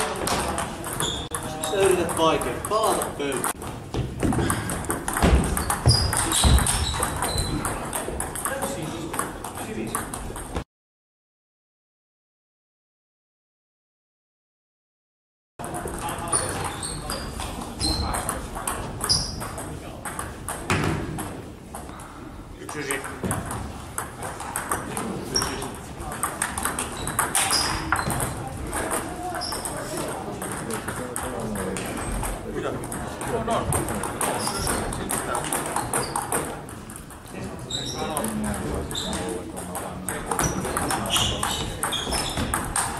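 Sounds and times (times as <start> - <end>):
people talking: 0.0 - 3.6, 5.5 - 10.1, 15.6 - 21.3, 22.6 - 23.5, 24.2 - 26.8, 27.4 - 36.7, 37.3 - 42.6
table tennis balls clicking: 0.0 - 10.6, 15.6 - 42.9.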